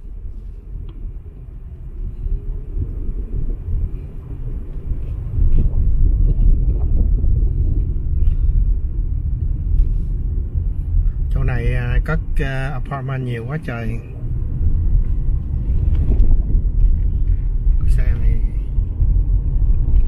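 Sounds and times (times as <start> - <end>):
car engine and road rumble: 0.0 - 20.0.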